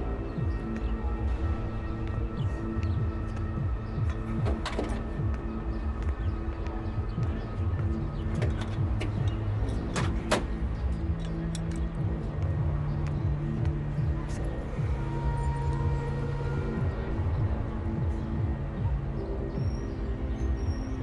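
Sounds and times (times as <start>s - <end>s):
drama score sustained tones: 0.0s - 9.8s, 10.6s - 21.0s.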